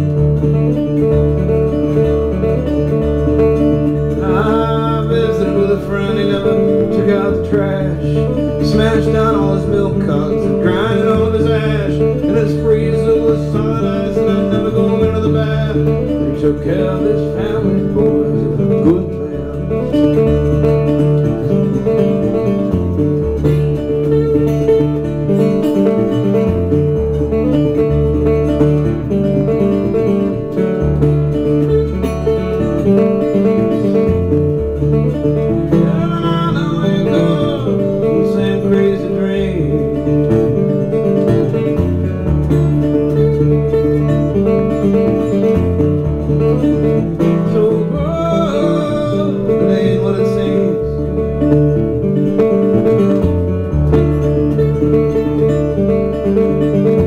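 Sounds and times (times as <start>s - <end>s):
solo acoustic guitar: 0.0s - 57.0s.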